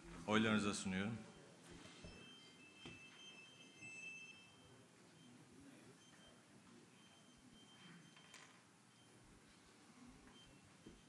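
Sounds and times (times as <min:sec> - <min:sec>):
faint high electronic tone: 0:00.8 - 0:11.0.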